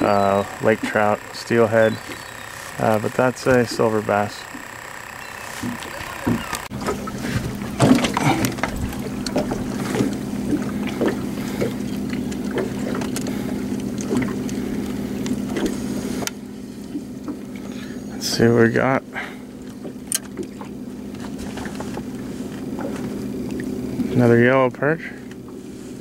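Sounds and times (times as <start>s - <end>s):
boat engine humming: 0.0s - 26.0s.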